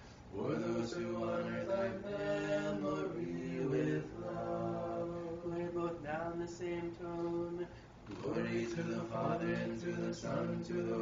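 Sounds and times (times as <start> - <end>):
unaccompanied choral chant: 0.3 - 11.0.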